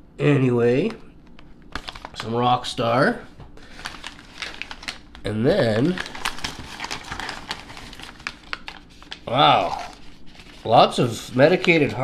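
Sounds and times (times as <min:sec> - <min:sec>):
plastic bags crinkling: 0:03.6 - 0:12.0.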